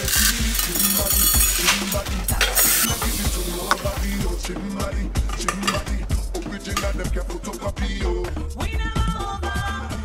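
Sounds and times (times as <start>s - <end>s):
background music with a beat: 0.0s - 10.0s.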